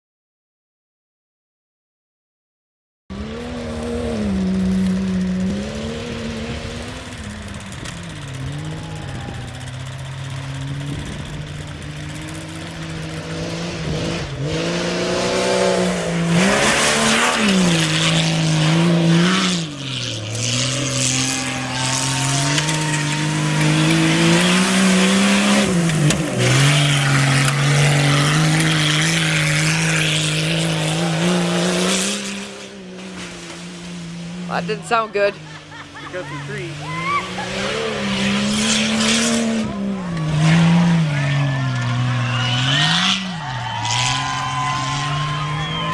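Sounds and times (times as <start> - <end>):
engine revving: 3.1 - 45.9.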